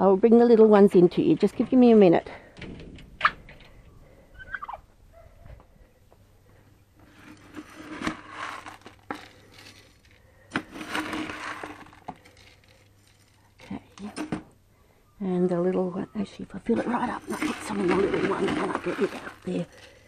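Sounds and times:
grain rattling against plastic scoop: 0:07.0 - 0:14.5, 0:16.6 - 0:20.0.

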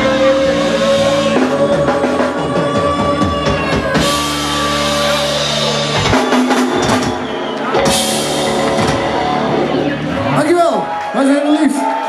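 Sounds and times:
live rock band playing: 0:00.0 - 0:12.0
drum kit strikes and crashes: 0:03.2 - 0:10.0.

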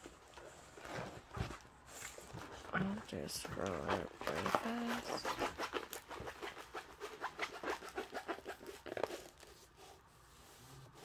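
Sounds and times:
canvas sheet rustling: 0:00.0 - 0:06.6.

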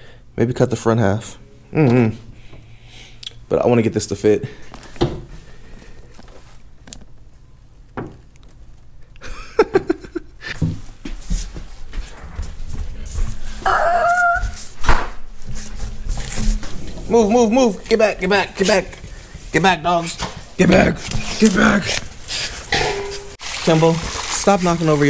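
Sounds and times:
dog whining behind a door: 0:13.6 - 0:14.7.

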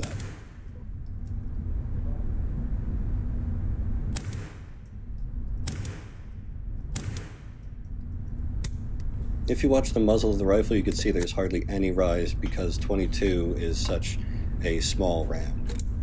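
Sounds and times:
rifle shots echoing indoors: 0:00.0 - 0:00.8, 0:04.1 - 0:08.0
steady low rumble: 0:00.0 - 0:16.0.

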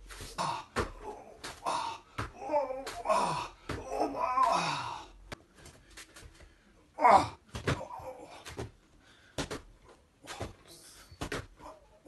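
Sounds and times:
man groaning with exertion: 0:00.4 - 0:05.2, 0:07.0 - 0:08.4.

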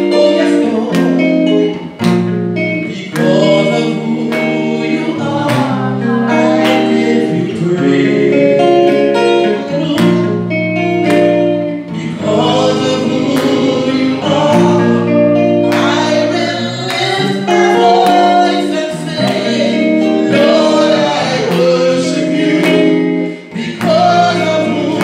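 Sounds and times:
instrumental accompaniment: 0:00.0 - 0:25.0
woman singing gospel song: 0:02.9 - 0:10.7, 0:12.0 - 0:25.0.

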